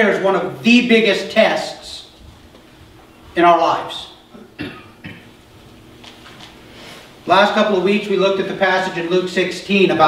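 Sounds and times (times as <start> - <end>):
person coughing: 4.4 - 5.3.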